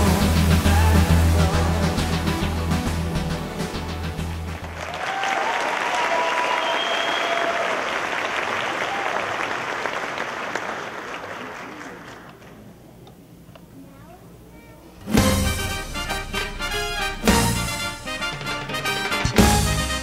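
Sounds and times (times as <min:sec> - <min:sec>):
dance music: 0:00.0 - 0:04.8, 0:15.0 - 0:20.0
audience applauding: 0:03.9 - 0:12.6, 0:18.2 - 0:20.0
audience cheering: 0:04.2 - 0:12.1.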